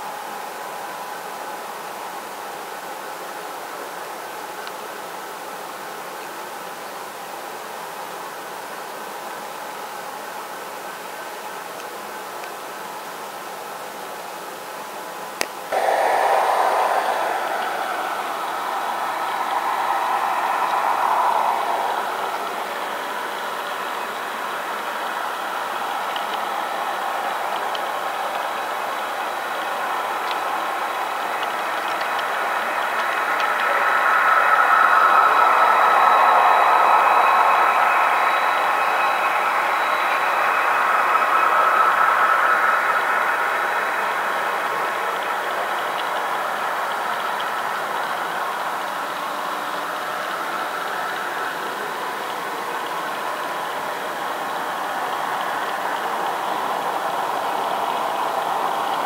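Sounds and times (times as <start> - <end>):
model train rolling on track: 15.7 - 59.0.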